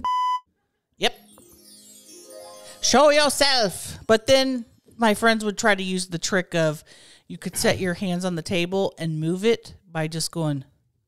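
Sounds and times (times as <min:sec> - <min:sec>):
falling shimmer of high tones: 0:01.2 - 0:04.3.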